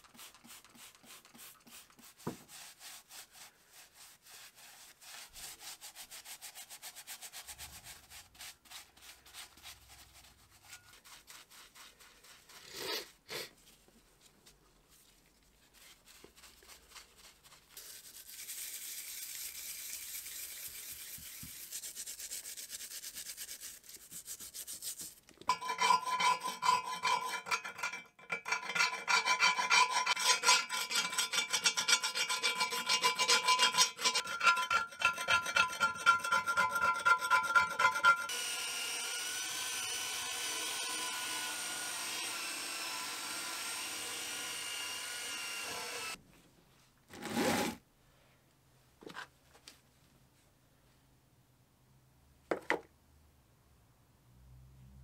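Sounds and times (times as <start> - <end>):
stiff brush scrubbing metal parts: 15.8 - 38.6
hand tool scraping cast iron: 25.5 - 46.2.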